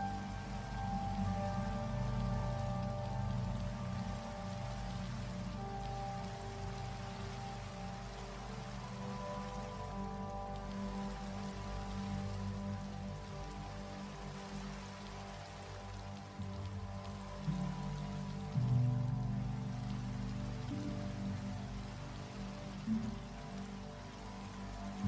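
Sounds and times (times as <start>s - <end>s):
music of sustained low chords: 0.0s - 25.0s
steady hiss: 0.0s - 25.0s.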